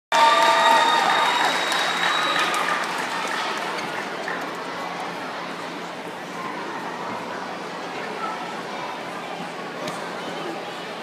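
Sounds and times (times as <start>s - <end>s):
audience applauding: 0.1s - 4.4s.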